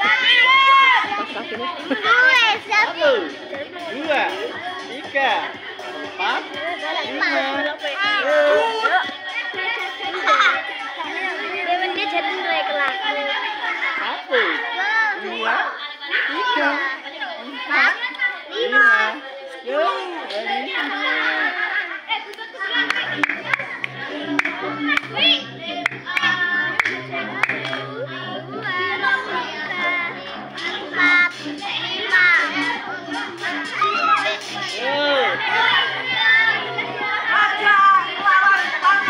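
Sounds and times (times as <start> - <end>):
children shouting: 0.0 - 39.0.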